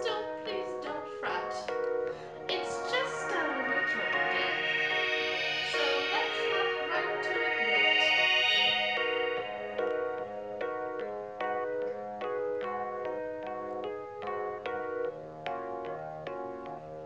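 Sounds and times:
keyboard playing chords: 0.0s - 17.0s.

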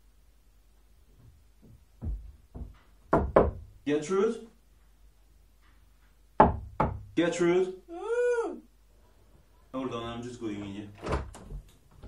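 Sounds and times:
knocks on wooden door: 1.6s - 3.8s, 6.4s - 7.2s.

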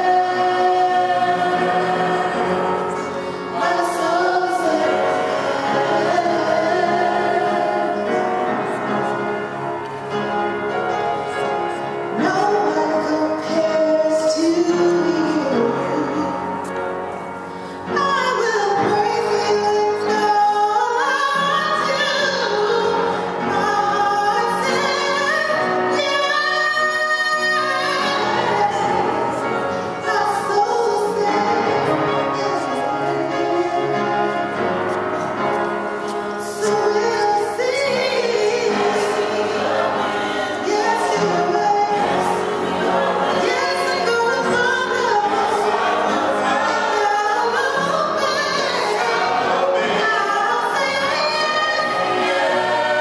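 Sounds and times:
group singing a praise song: 0.0s - 10.6s, 17.9s - 53.0s.

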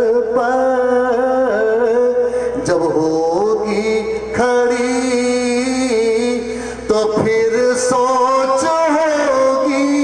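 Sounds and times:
man chanting through loudspeakers: 0.0s - 10.0s.

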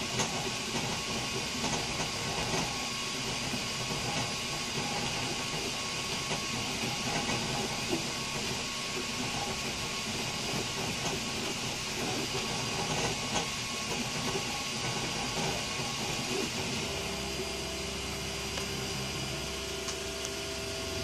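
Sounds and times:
cooling fans hissing: 0.0s - 21.0s.

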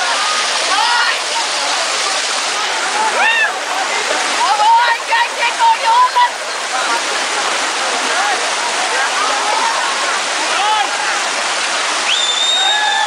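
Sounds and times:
crowd calling and shouting: 0.0s - 13.0s
river rushing over rocks: 0.0s - 13.0s.

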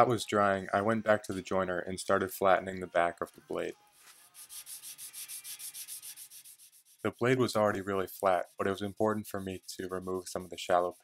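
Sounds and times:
steel blade scrubbing on sandpaper: 4.0s - 11.0s.

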